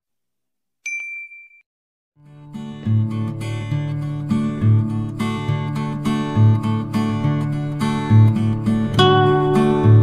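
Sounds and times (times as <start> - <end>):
notification bell ding: 0.8 - 1.6.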